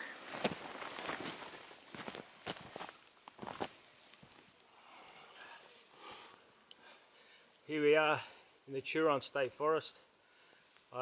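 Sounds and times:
footsteps on dry grass: 0.2s - 4.3s.

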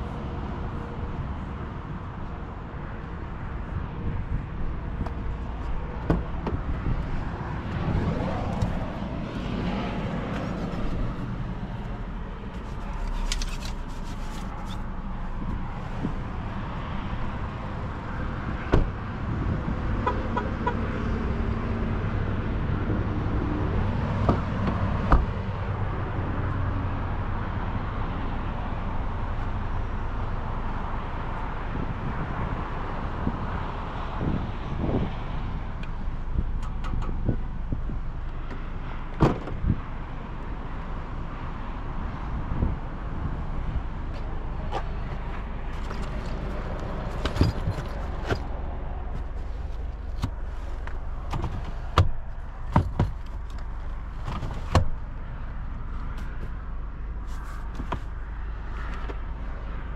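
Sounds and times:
low vehicle hum: 0.0s - 59.9s.

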